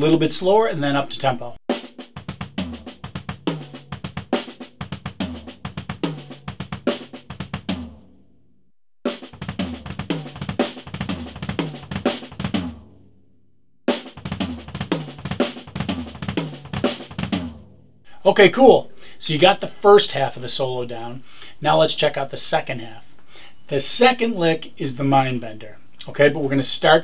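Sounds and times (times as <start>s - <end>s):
drum kit with double bass drums: 1.2s - 8.1s, 9.1s - 13.0s, 13.9s - 18.3s.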